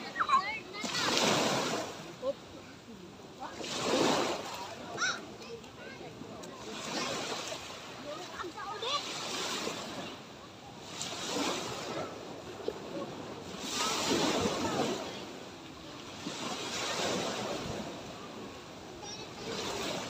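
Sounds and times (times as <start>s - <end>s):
sea waves breaking on beach: 0.0s - 20.0s.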